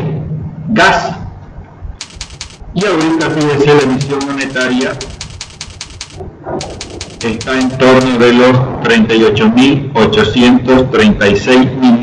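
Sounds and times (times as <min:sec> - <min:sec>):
rapid even clicking: 0:02.0 - 0:08.4.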